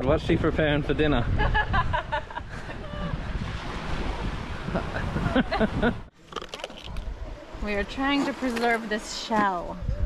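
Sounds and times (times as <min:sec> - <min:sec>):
wind buffeting microphone: 0:00.0 - 0:06.2, 0:06.8 - 0:10.0
surf washing: 0:02.5 - 0:06.1, 0:07.1 - 0:09.7.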